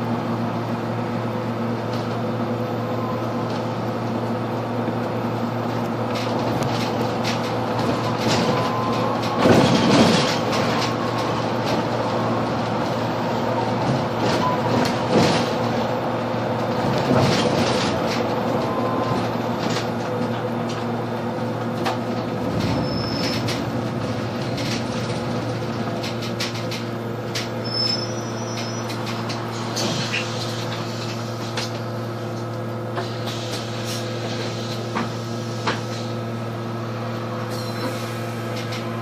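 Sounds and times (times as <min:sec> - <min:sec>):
bus drivetrain hum: 0:00.0 - 0:39.0
road noise: 0:00.0 - 0:39.0
bus body rattling: 0:03.3 - 0:39.0.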